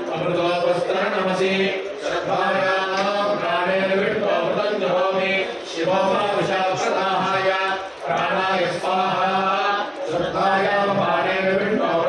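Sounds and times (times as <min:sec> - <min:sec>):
men chanting mantras together: 0:00.0 - 0:12.0.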